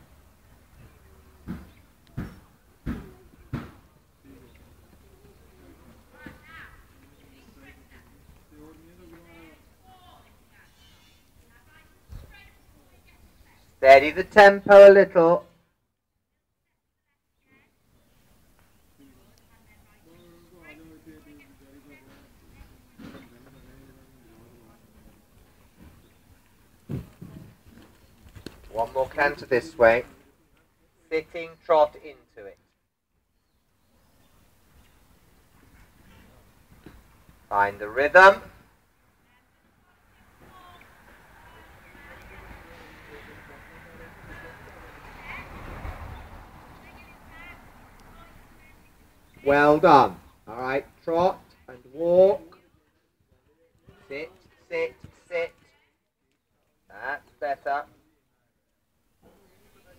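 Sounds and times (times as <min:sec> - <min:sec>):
horse hooves trotting on sand: 0:18.5 - 0:29.4.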